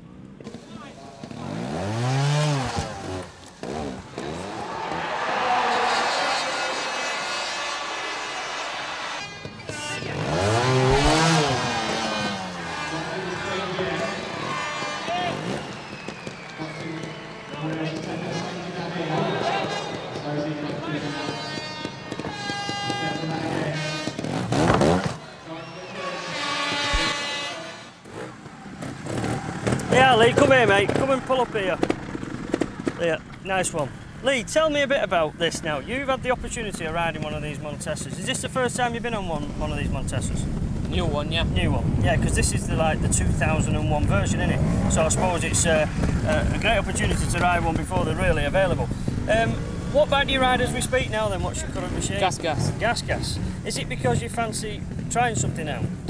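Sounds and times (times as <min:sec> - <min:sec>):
motorcycle engine revving: 0:00.4 - 0:25.2, 0:26.2 - 0:34.2, 0:39.3 - 0:56.0.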